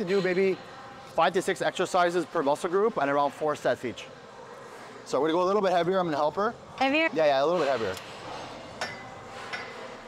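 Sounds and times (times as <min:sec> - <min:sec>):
gym room noise: 0:00.0 - 0:10.0.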